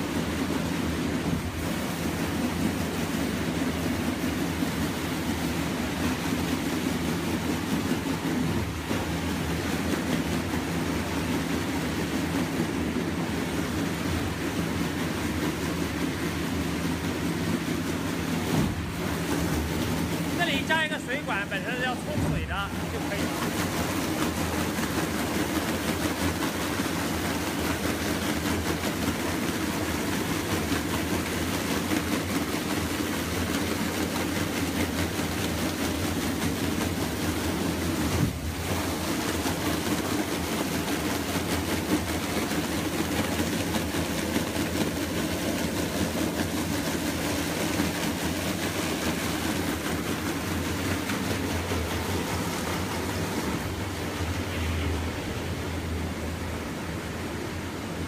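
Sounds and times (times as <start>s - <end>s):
churning water: 0.0s - 58.0s
motor hum: 0.0s - 58.0s.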